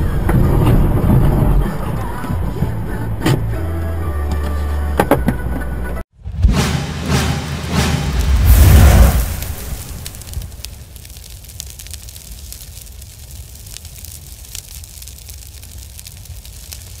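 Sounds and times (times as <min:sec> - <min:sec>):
fire low rumble: 0:00.0 - 0:03.6, 0:07.1 - 0:17.0
loud boom: 0:06.2 - 0:10.9
fire crackles and pops: 0:07.0 - 0:17.0.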